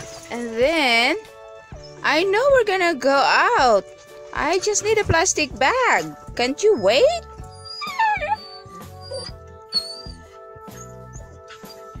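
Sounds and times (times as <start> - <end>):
background music: 0.0 - 12.0
dog whining: 1.7 - 2.1, 6.8 - 12.0.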